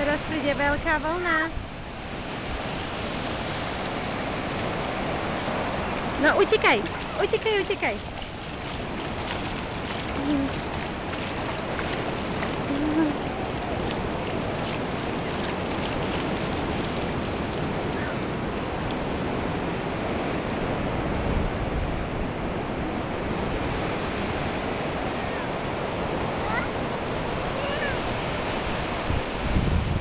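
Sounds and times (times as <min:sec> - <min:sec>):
ocean surf on sandy beach: 0:00.0 - 0:30.0
feet splashing in shallow water: 0:03.7 - 0:19.4.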